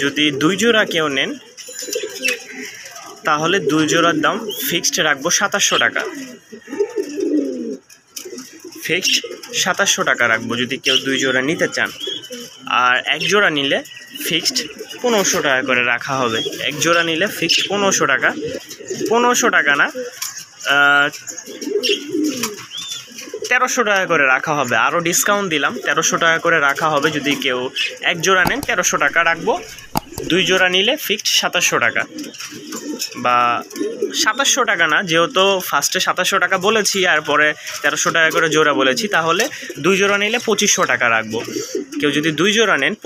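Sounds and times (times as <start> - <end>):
pigeons cooing: 0.0 - 43.0.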